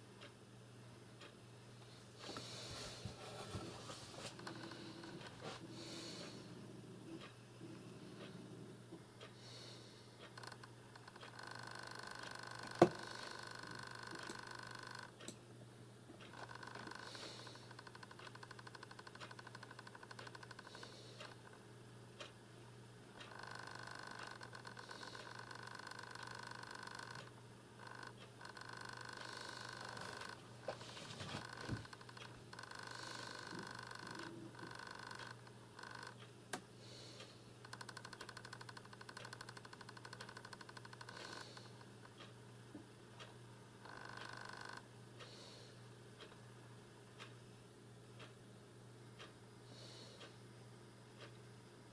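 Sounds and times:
faint pulsing buzz: 0.0 - 51.9.

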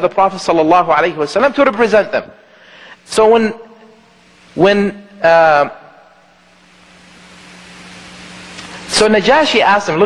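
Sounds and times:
background hiss: 0.0 - 10.0.

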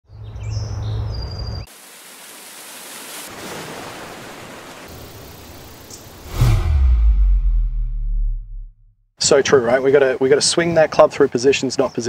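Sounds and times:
low rumble: 6.2 - 9.0.

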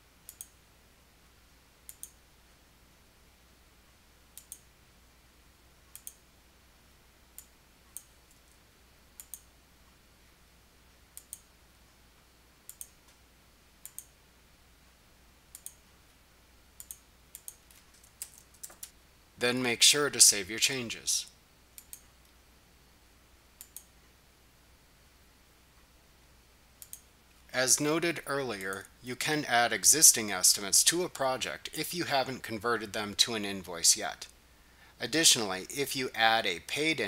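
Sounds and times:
faint low hum: 0.0 - 37.0
computer mouse clicks: 0.3 - 0.6, 1.9 - 2.2, 4.4 - 4.7, 5.9 - 6.2, 7.4 - 8.6, 9.2 - 9.5, 11.2 - 11.5, 12.7 - 13.2, 13.8 - 14.2, 15.5 - 15.9, 16.8 - 19.0, 21.8 - 22.4, 23.6 - 23.9, 26.8 - 27.1.

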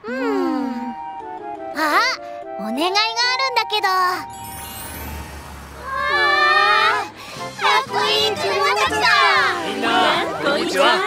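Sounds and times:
high pitch-bending voice-like tone: 3.9 - 10.3
soft whoosh: 4.3 - 7.6.

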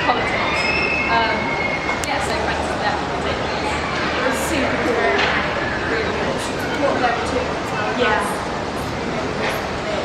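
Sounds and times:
train wheels squealing on rails: 0.0 - 2.0
voices: 0.0 - 10.0.

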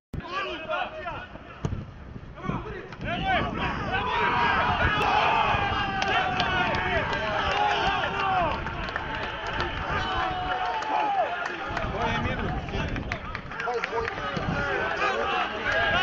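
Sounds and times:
people shouting and cheering: 0.2 - 1.7, 2.4 - 16.0.

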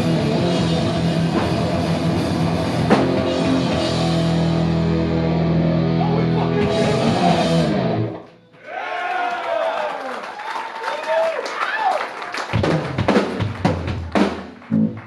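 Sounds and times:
hardcore band playing: 0.0 - 8.2, 12.5 - 15.0
stray guitar sounds: 0.0 - 8.5.

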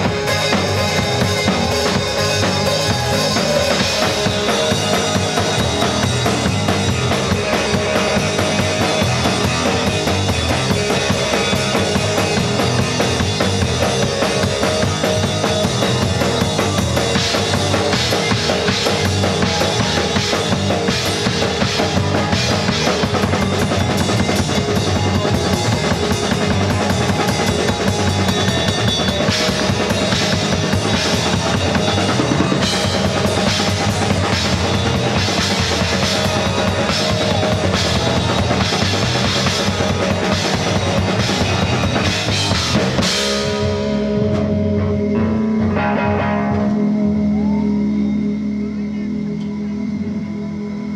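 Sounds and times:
drum kit: 0.0 - 48.2
electric guitars: 0.0 - 50.9
rock band playing: 0.0 - 50.9.

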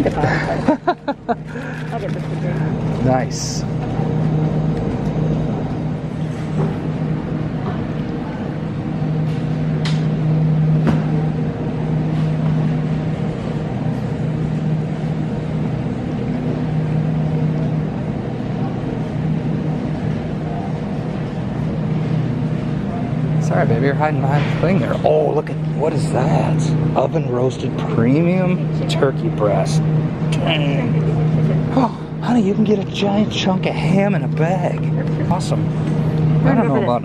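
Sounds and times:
refrigerator mechanical hum: 0.0 - 37.0.

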